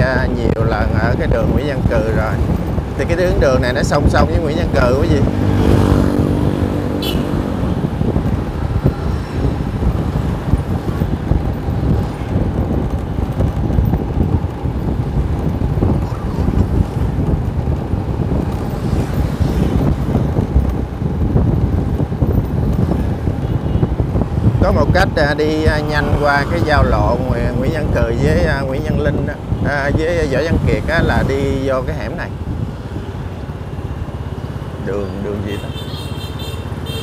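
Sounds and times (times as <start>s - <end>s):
road noise: 0.0s - 37.0s
wind rushing over microphone: 0.0s - 37.0s
pitched engine hum: 1.4s - 28.6s.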